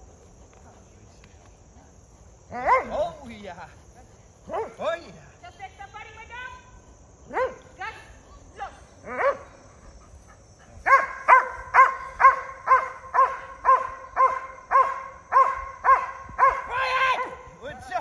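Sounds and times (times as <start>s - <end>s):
dog barking: 2.5s - 3.1s, 4.5s - 4.9s, 7.3s - 7.7s, 9.0s - 9.6s, 10.8s - 17.4s.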